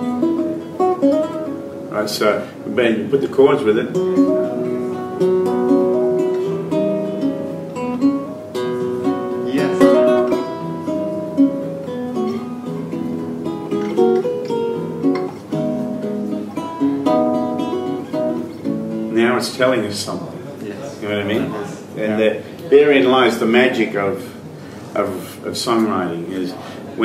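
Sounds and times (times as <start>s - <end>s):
acoustic guitar chords and melody: 0.0s - 20.3s
man speaking: 1.9s - 4.0s, 9.4s - 10.4s, 19.1s - 27.0s.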